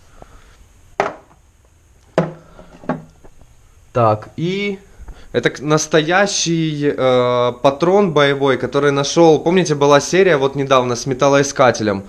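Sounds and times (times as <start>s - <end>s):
objects knocking on wooden shelf: 1.0s - 1.4s, 2.2s - 3.1s.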